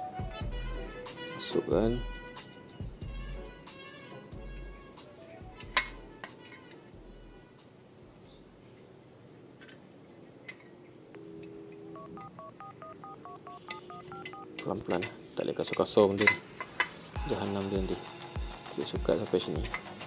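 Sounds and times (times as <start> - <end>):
quiet background music: 0.0 - 9.5, 10.2 - 20.0
short stepped beeps: 12.0 - 14.5.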